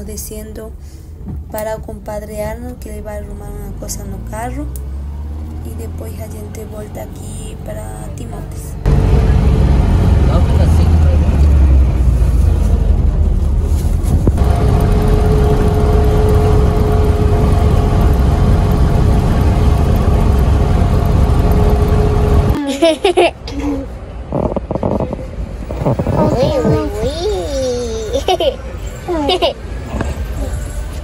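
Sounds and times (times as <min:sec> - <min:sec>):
car engine and road rumble: 0:00.0 - 0:31.0.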